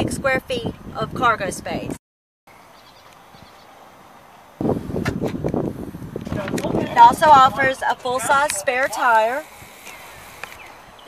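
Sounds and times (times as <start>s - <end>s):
faint outdoor hiss: 2.5s - 11.0s.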